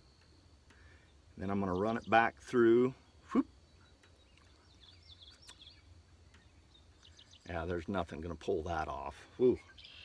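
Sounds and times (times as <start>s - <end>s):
birds chirping: 0.0s - 10.0s.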